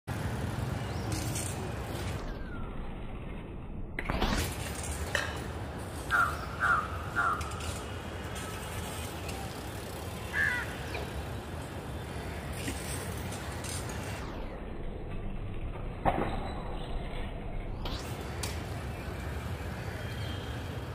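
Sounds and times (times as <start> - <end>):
low traffic rumble: 0.1 - 20.9.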